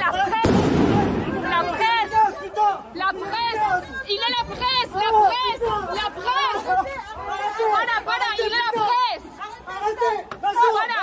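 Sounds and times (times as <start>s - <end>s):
agitated voices shouting: 0.0s - 11.0s.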